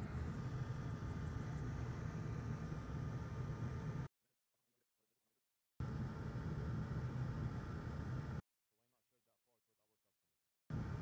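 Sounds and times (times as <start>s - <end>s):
low hum: 0.0s - 4.1s.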